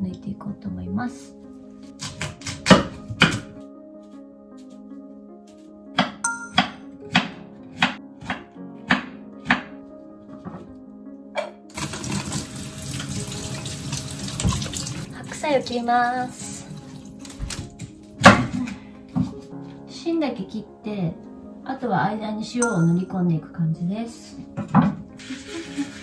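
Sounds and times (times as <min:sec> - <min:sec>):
knife chopping on wooden board: 0:02.0 - 0:03.6, 0:06.0 - 0:09.8
tap running water into sink: 0:11.7 - 0:15.8.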